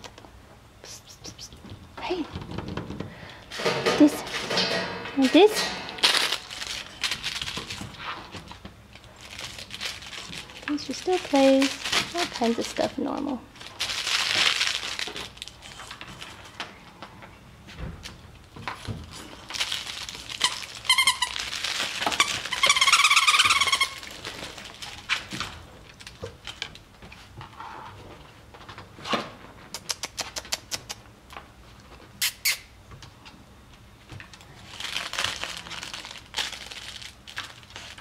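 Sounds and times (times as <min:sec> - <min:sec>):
puppy chewing crinkly toy: 0:05.3 - 0:17.1, 0:18.4 - 0:27.4, 0:34.2 - 0:38.0
squeaky toy squeaks: 0:20.4 - 0:21.4, 0:22.2 - 0:24.1.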